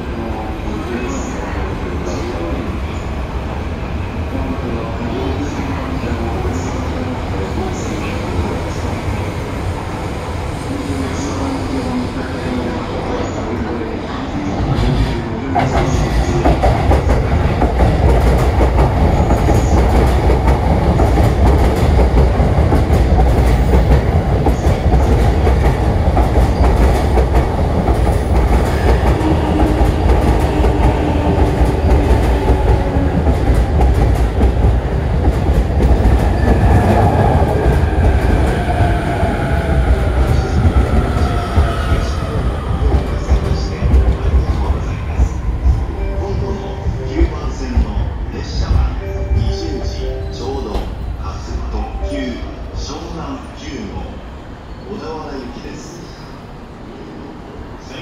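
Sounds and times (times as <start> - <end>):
train rumbling: 0.0 - 58.0.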